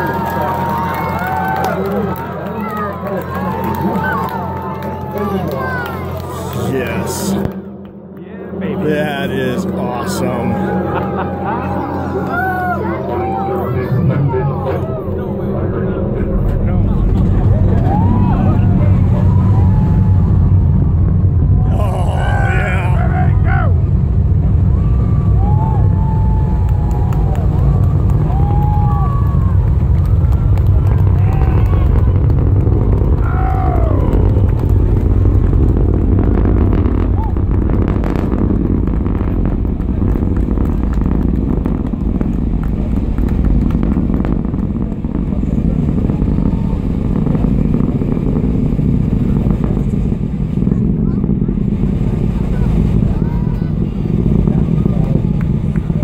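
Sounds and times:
crowd whooping and cheering: 0.0s - 7.6s, 9.5s - 15.6s, 17.2s - 44.6s
rocket launch roar: 0.0s - 56.0s.

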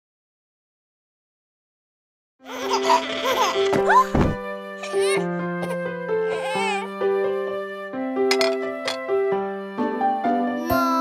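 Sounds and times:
cartoon toddler whimpering: 2.5s - 4.2s, 4.8s - 5.3s, 6.3s - 6.9s
soft children's song music: 2.5s - 11.0s.

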